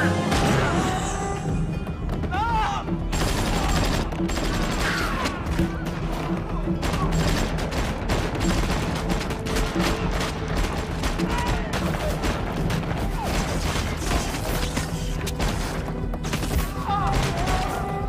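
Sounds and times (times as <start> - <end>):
film music score: 0.0 - 18.0
rapid gunfire: 3.1 - 17.8.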